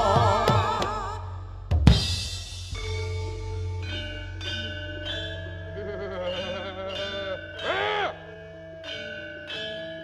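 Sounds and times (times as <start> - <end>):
metallophone notes ringing: 2.8 - 10.0
voice-like melodic line: 5.4 - 8.6.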